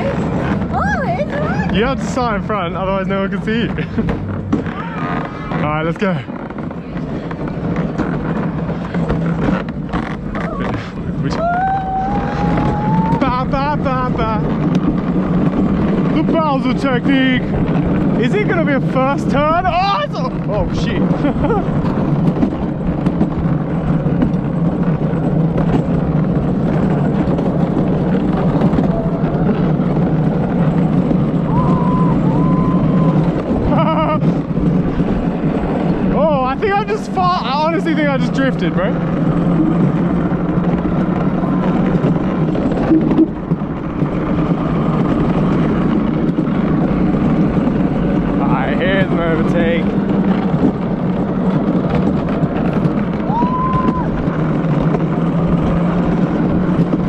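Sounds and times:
cart wheels rumbling on concrete: 0.0s - 57.0s
wind on microphone: 0.0s - 57.0s.

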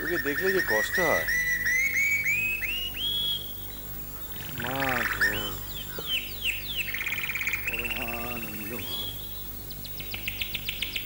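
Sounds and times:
bird trill: 0.0s - 11.0s
birds calling: 0.0s - 11.0s
rising whistled bird notes: 0.0s - 11.0s.

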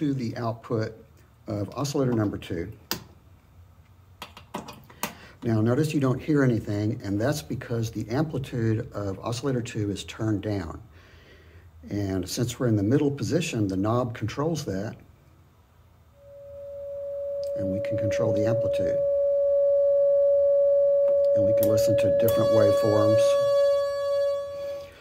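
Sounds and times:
sine wave tone: 16.2s - 25.0s.

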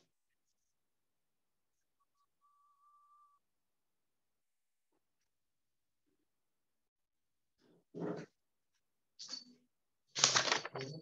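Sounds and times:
faint whistle-like tone: 2.1s - 3.4s.

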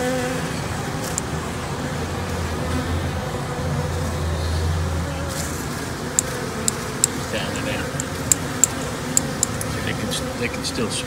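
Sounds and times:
honey bees humming: 0.0s - 11.0s
sharp clicks: 1.1s - 1.3s, 6.2s - 7.2s, 8.0s - 9.7s.

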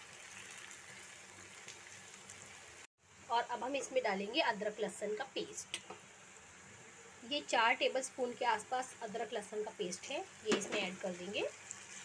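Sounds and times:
food sizzling in oil: 0.0s - 12.0s.

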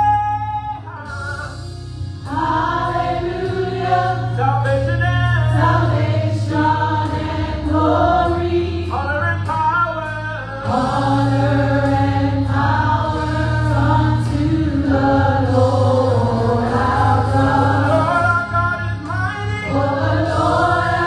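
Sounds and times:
low bass notes: 0.0s - 21.0s
vocal group singing in harmony: 2.2s - 21.0s.

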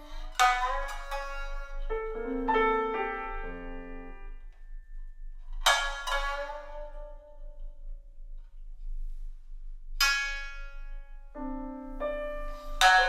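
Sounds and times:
shamisen strikes: 0.0s - 7.9s, 10.0s - 13.0s.

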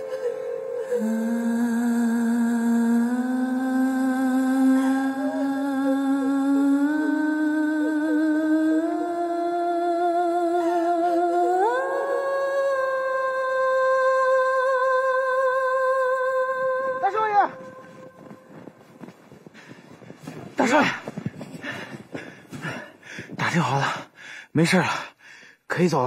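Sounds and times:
person humming slow melody: 0.0s - 17.0s.

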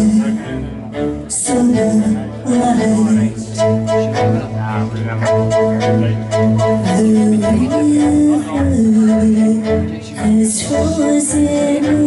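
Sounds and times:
low bowed string drone: 0.0s - 12.0s.

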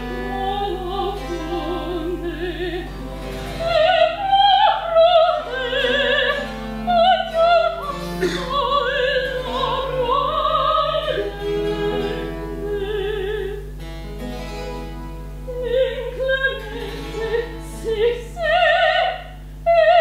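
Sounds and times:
soprano singing opera aria: 0.0s - 13.8s, 15.5s - 20.0s.

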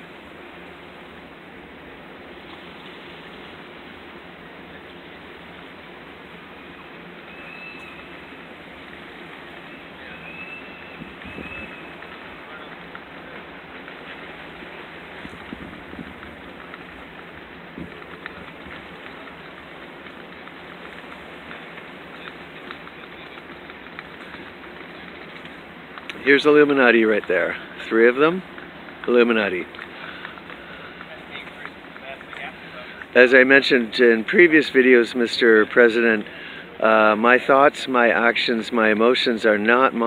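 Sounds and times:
outdoor background hiss: 0.0s - 40.0s.

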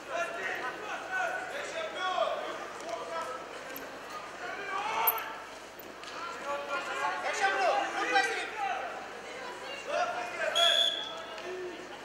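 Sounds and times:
referee's whistle blast: 10.6s - 11.1s.

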